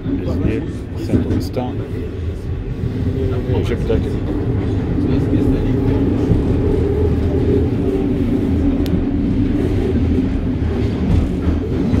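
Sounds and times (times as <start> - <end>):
train rumble inside car: 0.0 - 12.0.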